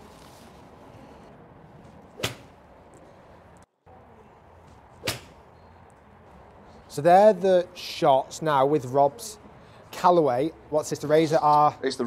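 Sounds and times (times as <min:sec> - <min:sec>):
golf club swish: 0:02.0 - 0:02.6
club striking golf ball: 0:02.2 - 0:02.6, 0:05.0 - 0:05.4.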